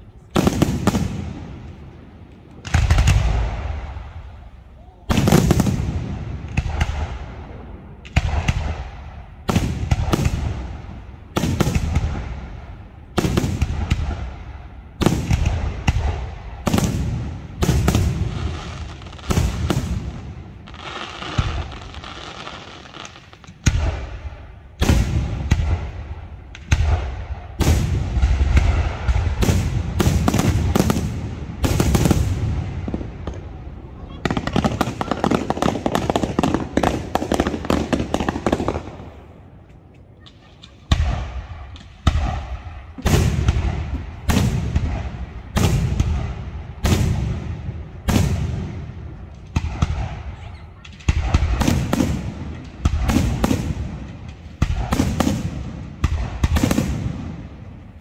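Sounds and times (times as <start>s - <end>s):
firework crackle: 5.1s - 39.4s, 40.3s - 58.0s.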